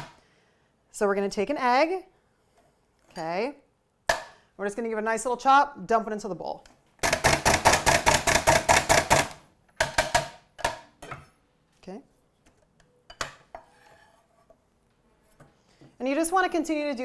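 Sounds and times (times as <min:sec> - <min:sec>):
food chopper clacking: 0:07.0 - 0:09.4.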